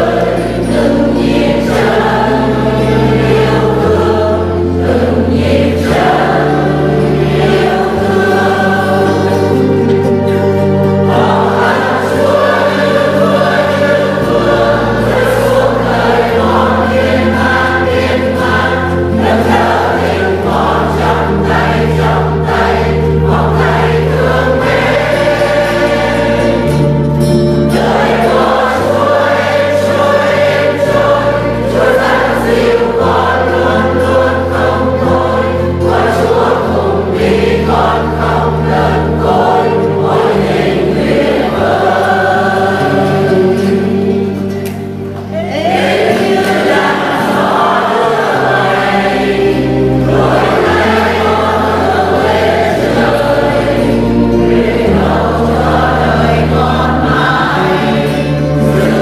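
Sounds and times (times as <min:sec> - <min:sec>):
congregation singing a hymn: 0:00.0 - 0:59.0
instrumental accompaniment: 0:00.0 - 0:59.0.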